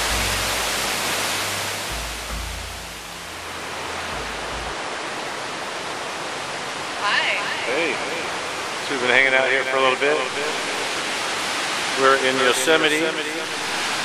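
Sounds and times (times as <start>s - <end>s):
waterfall rushing: 0.0s - 14.0s.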